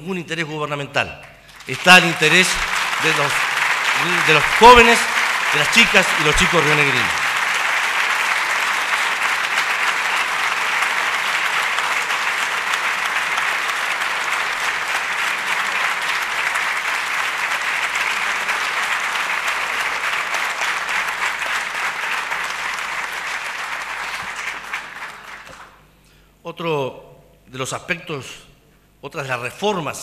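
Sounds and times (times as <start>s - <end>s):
crowd applauding: 1.5s - 25.8s.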